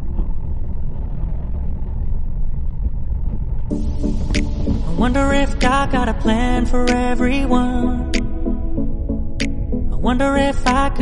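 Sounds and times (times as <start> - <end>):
motorcycle road noise: 0.0 - 5.6
wind rumble: 0.0 - 11.0.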